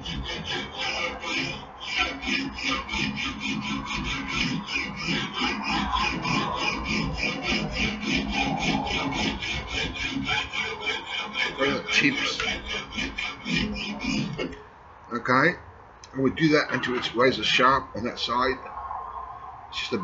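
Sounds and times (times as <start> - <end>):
hand file rasping on steel: 0.0 - 14.6.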